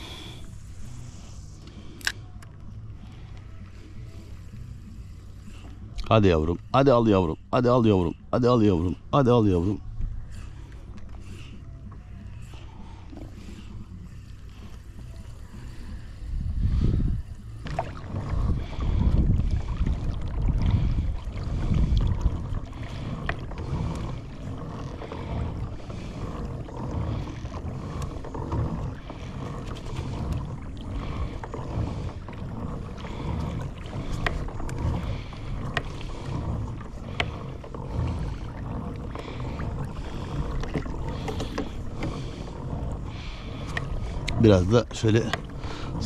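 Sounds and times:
waves lapping against kayak hull: 0.0 - 46.0.

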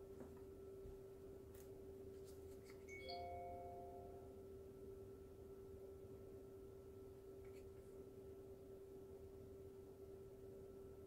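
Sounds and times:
low electrical hum: 0.0 - 11.0
short chime-like ring: 2.9 - 4.3.

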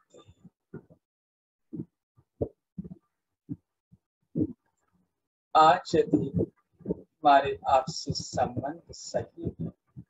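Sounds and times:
person's low voice puffs: 5.8 - 10.0.

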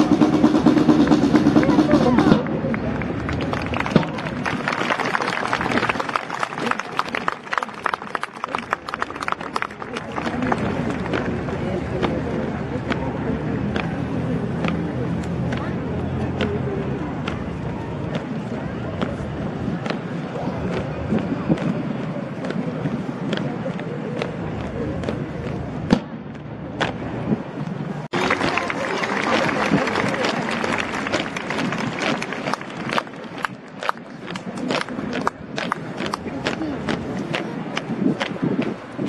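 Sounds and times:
crowd talking: 0.0 - 39.0.

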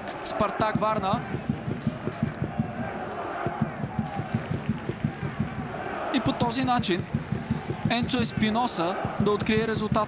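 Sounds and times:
stadium crowd cheering: 0.0 - 10.0
low thumps: 0.7 - 5.8, 6.7 - 8.4.

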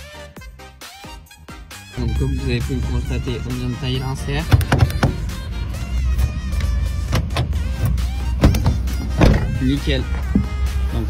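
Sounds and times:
background music: 0.0 - 11.0
low rumble: 2.0 - 9.6.

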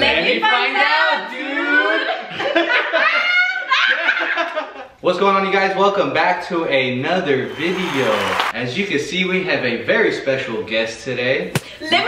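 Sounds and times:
people laughing: 1.7 - 4.9
voices: 7.2 - 8.6.

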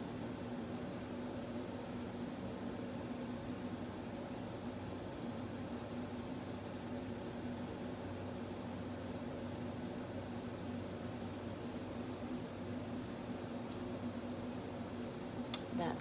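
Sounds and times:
room hum and hiss: 0.0 - 16.0.

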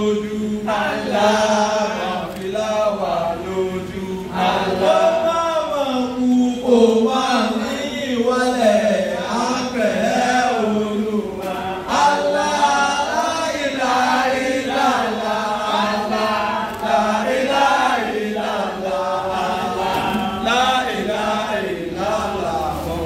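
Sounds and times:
man chanting into a microphone: 0.0 - 23.0.

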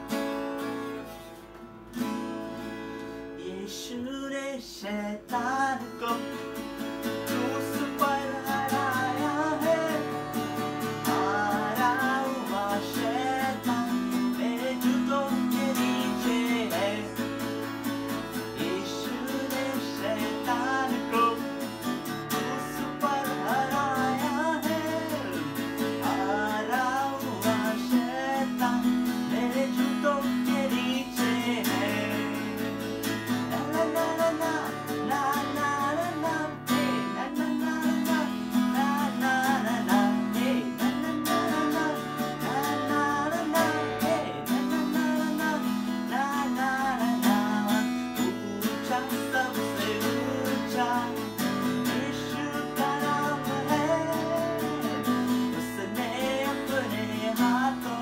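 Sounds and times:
acoustic guitar strumming chords: 0.0 - 58.0
person singing: 7.2 - 58.0.

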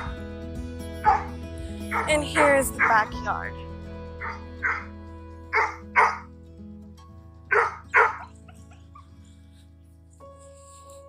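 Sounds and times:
background music: 0.0 - 11.0
dog barking: 1.0 - 1.3, 1.9 - 2.1, 4.2 - 4.9, 5.6 - 6.3, 7.5 - 8.4.

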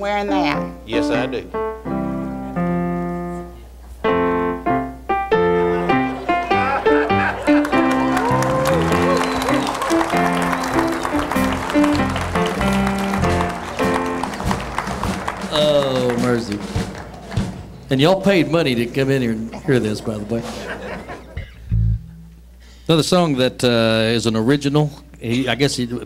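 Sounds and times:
keyboard chords: 0.0 - 18.8
audience applause: 5.8 - 17.9.

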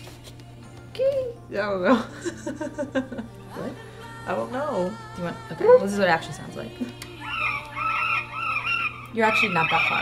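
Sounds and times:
recorded parakeet chirps: 7.2 - 10.0.

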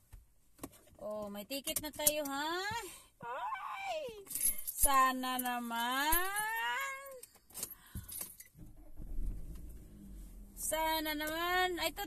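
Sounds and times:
small objects clicking and jingling: 4.2 - 8.5.

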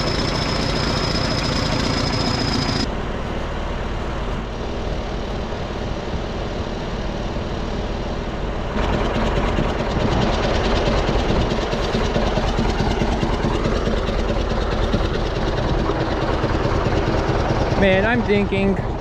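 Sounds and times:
bulldozer diesel engine idling: 0.0 - 4.0, 8.7 - 19.0.

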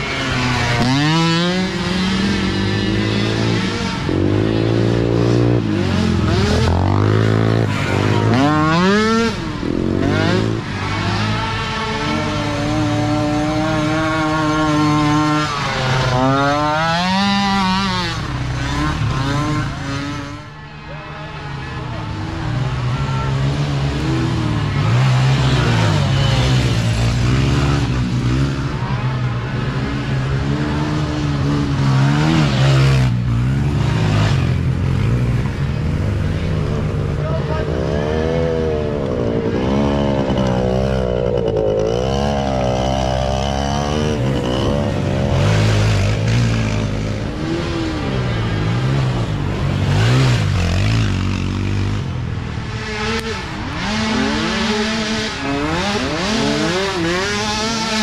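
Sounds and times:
small atv engines revving: 0.0 - 58.0.

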